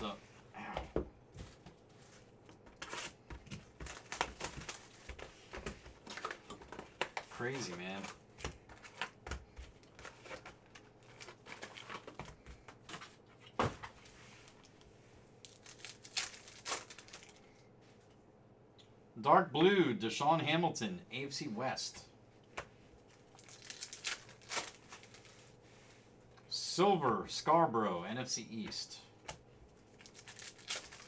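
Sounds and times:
cards shuffled by hand: 1.4s - 13.2s
foil wrappers crinkling and tearing: 2.8s - 5.2s, 7.0s - 12.3s, 15.4s - 17.5s, 23.1s - 25.5s, 29.9s - 31.0s.

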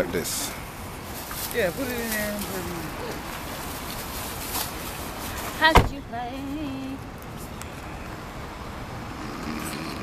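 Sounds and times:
low rumble and hiss of traffic: 0.0s - 10.0s.

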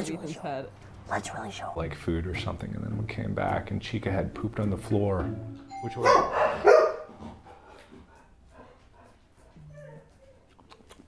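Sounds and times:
dog whimpering: 9.6s - 10.5s.

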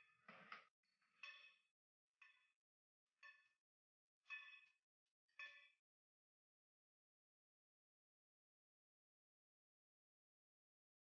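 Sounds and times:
faint metallic clangs: 0.0s - 2.6s.

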